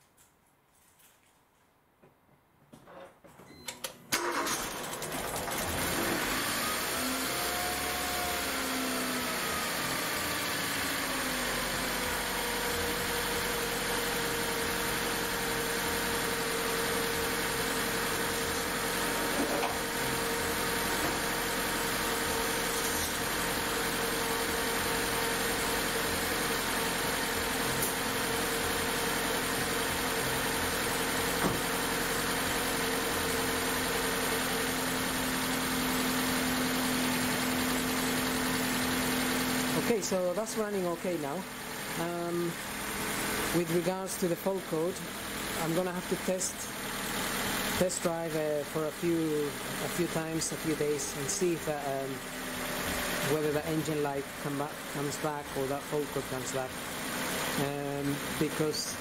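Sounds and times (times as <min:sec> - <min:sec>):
car engine idling: 0:04.2 - 0:59.0.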